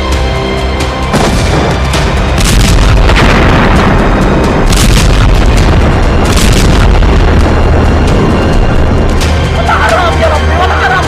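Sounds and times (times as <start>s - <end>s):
loud dramatic music: 0.0s - 11.0s
heavy booms: 1.1s - 9.3s.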